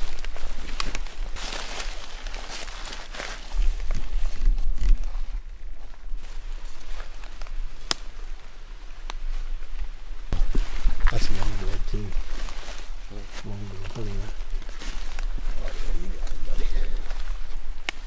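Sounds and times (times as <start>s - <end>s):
sharp clicks and crackles: 0.0s - 1.2s
footsteps through dry leaves: 0.0s - 18.0s.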